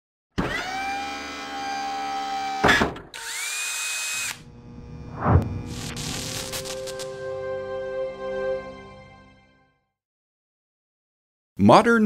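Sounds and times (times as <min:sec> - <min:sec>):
rising machine-like whine: 0:04.1 - 0:07.5.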